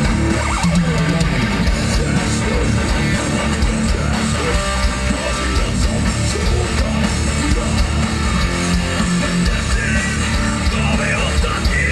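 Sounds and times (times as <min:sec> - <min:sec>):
bass guitar: 0:00.0 - 0:11.9
drum kit: 0:00.0 - 0:11.9
electric guitars strumming: 0:00.0 - 0:11.9.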